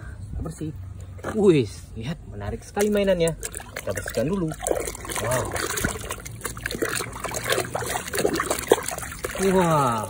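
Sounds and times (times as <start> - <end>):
water sloshing in basin: 0.7 - 10.0
water trickling: 0.8 - 10.0.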